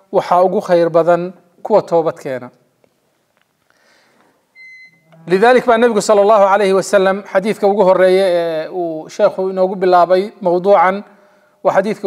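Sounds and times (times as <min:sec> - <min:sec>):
high-pitched beep: 0:04.6 - 0:05.2.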